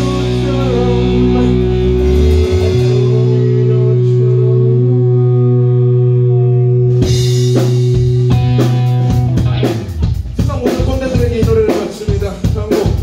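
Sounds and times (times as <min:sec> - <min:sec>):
drum kit playing: 0:00.0 - 0:04.2, 0:06.8 - 0:13.0
electric guitar chord ringing: 0:00.0 - 0:10.1.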